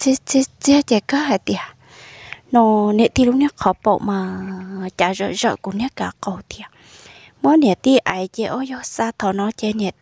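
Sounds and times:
person narrating: 0:00.0 - 0:10.0.

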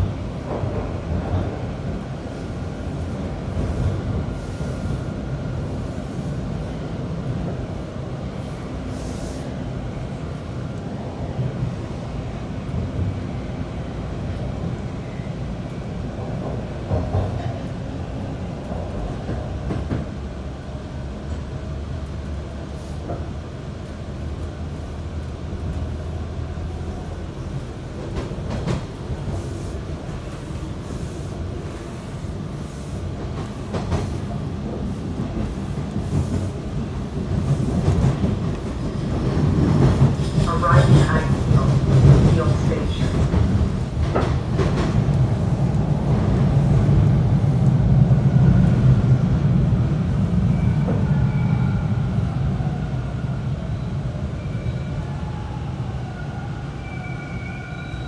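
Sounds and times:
subway train rumbling on rails: 0:00.0 - 0:58.0.

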